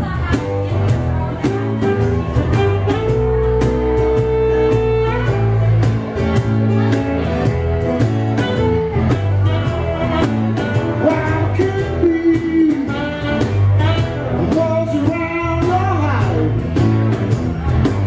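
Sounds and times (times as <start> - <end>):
acoustic guitar: 0.0 - 18.0
cajon: 0.0 - 18.0
electric guitar: 0.0 - 18.0
saxophone: 0.1 - 15.3
person singing: 9.4 - 16.6.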